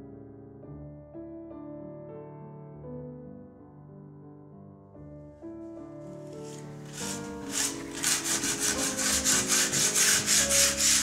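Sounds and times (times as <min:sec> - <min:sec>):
soft piano music: 0:00.0 - 0:11.0
scraper scraping clay bowl: 0:06.4 - 0:11.0.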